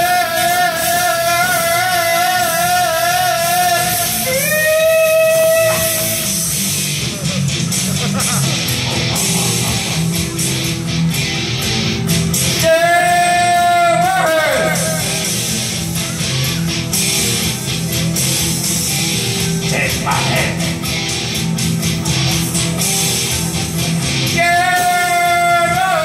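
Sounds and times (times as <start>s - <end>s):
person singing with vibrato: 0.0s - 6.5s, 12.6s - 15.8s, 24.4s - 26.0s
guitar: 0.0s - 26.0s
rock music: 0.0s - 26.0s.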